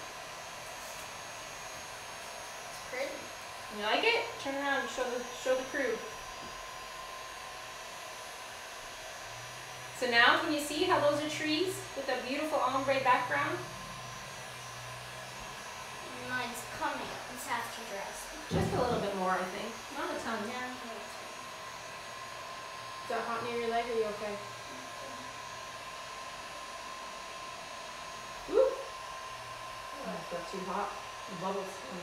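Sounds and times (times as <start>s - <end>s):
heat gun blowing: 0.0s - 32.0s.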